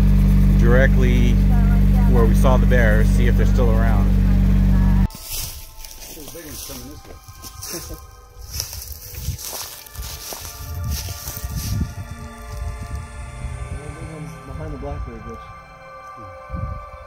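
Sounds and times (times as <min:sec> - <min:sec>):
footsteps on forest ground: 0:05.1 - 0:13.2
wind rumbling on microphone: 0:08.4 - 0:15.6, 0:16.2 - 0:17.0.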